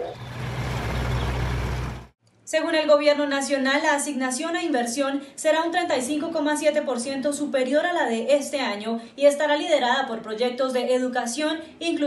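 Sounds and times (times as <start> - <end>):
diesel engines droning: 0.0 - 2.1.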